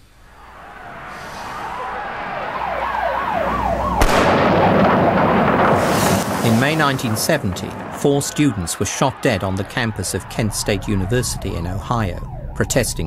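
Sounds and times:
siren wailing: 0:00.0 - 0:13.0
loud din: 0:00.5 - 0:13.0
sharp bang: 0:04.0 - 0:10.5.

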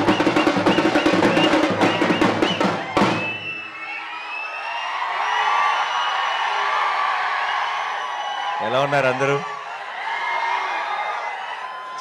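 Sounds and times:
fast live drumming: 0:00.0 - 0:03.5
crowd cheering and whistling: 0:00.0 - 0:12.0.

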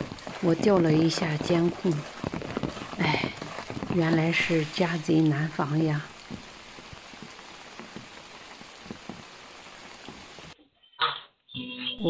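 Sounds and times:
drops ticking on surfaces: 0:00.0 - 0:10.6
light rain pattering: 0:00.0 - 0:10.6.

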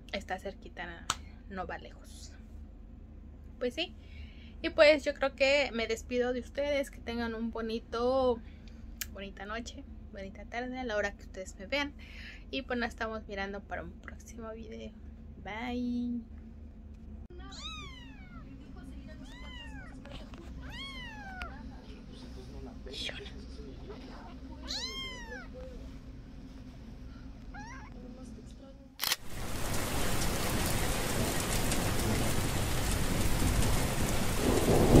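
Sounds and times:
kitten meowing: 0:17.5 - 0:18.4, 0:19.2 - 0:20.0, 0:20.6 - 0:21.6, 0:24.6 - 0:25.7, 0:27.6 - 0:27.9
loud rain-like rushing noise: 0:29.2 - 0:35.0.

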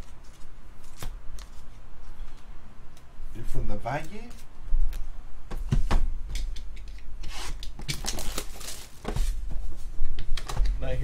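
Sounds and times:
shrink wrap crinkling: 0:07.6 - 0:09.2.

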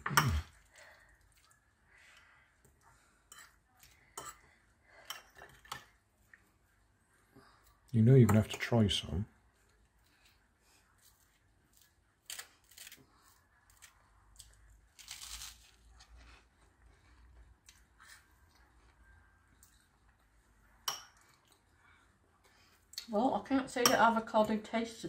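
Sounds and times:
chewing: 0:00.2 - 0:04.6, 0:09.5 - 0:23.1
crunching toast: 0:11.7 - 0:17.8.

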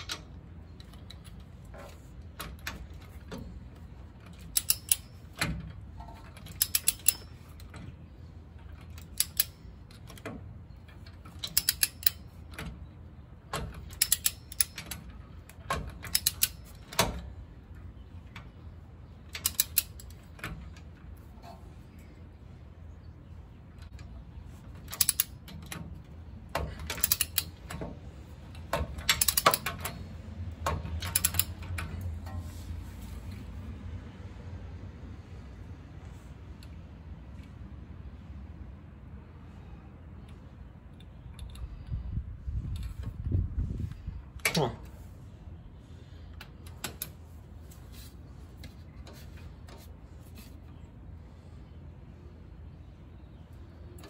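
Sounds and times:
torque wrench ratchet clicks: 0:04.3 - 0:05.2, 0:06.5 - 0:07.7, 0:08.7 - 0:09.7, 0:11.3 - 0:12.4, 0:13.8 - 0:17.0, 0:19.3 - 0:20.3, 0:24.8 - 0:25.4, 0:26.9 - 0:27.7, 0:29.0 - 0:30.0, 0:31.0 - 0:31.6.

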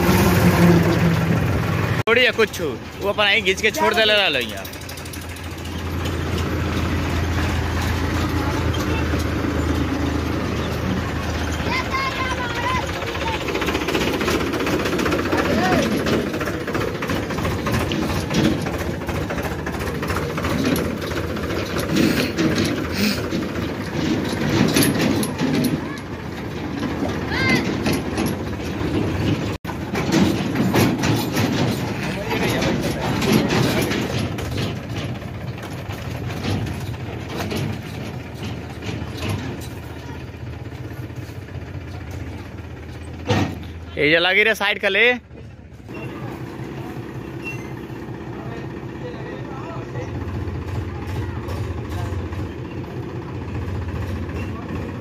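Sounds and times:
tractor diesel engine clattering: 0:00.0 - 0:55.0
trailer clanking and rattling: 0:00.0 - 0:55.0.

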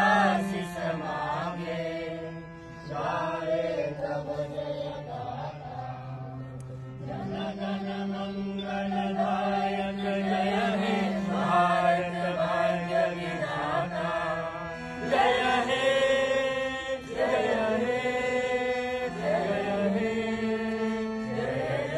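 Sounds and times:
group singing slow song: 0:00.0 - 0:21.9.

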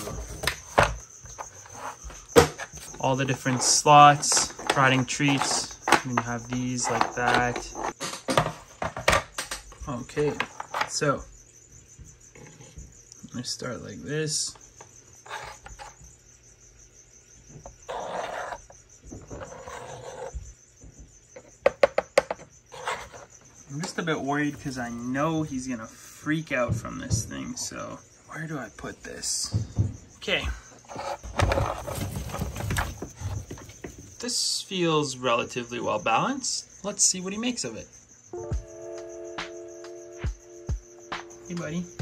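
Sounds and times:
plastic toy rustling and sliding: 0:00.0 - 0:09.1, 0:15.2 - 0:16.0, 0:17.9 - 0:20.4, 0:22.7 - 0:25.2, 0:30.8 - 0:34.0.

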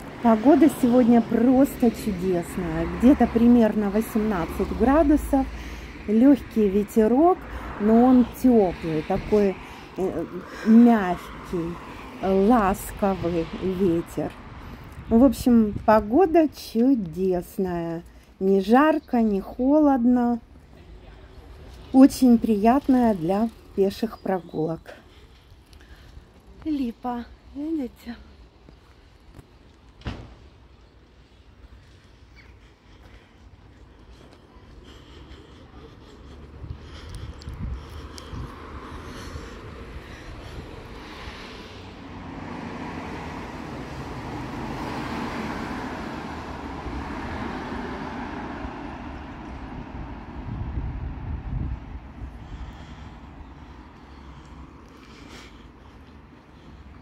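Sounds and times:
vehicle passing: 0:00.0 - 0:17.1, 0:31.8 - 0:57.0
wind buffeting microphone: 0:33.4 - 0:54.4.

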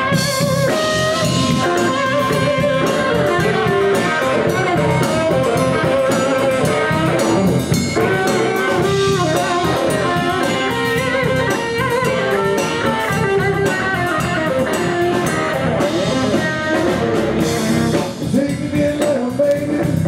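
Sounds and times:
baritone saxophone: 0:00.0 - 0:18.1
drum kit: 0:00.0 - 0:20.0
electric bass: 0:00.0 - 0:20.0
electric guitar: 0:00.0 - 0:20.0.

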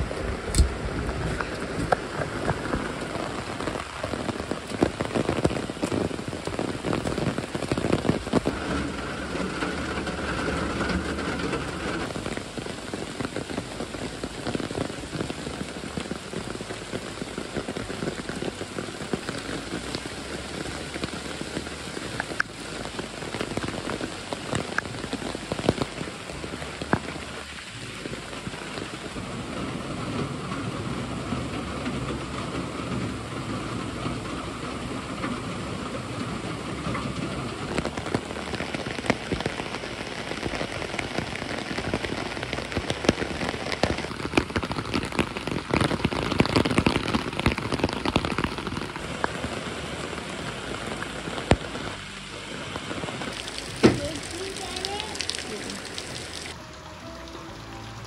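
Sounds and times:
raindrops hitting close by: 0:00.0 - 0:58.0
steady rain: 0:00.0 - 0:58.0.

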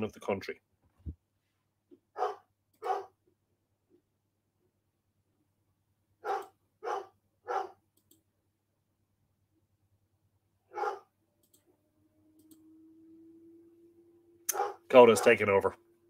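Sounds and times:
dog barking indoors: 0:02.0 - 0:03.3, 0:06.2 - 0:07.9, 0:10.6 - 0:11.2, 0:14.4 - 0:15.4.

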